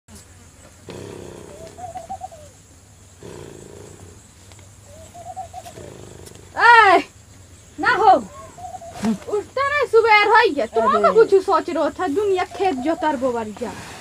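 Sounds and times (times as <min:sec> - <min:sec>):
man snoring: 0:00.9 - 0:01.6, 0:03.2 - 0:04.2.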